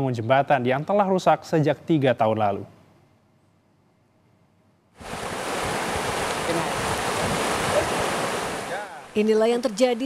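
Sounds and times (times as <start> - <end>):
floodwater rushing: 5.0 - 10.0.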